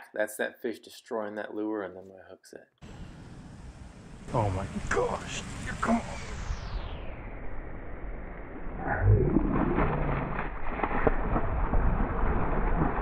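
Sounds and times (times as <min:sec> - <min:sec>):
low rumble: 0:02.8 - 0:13.0.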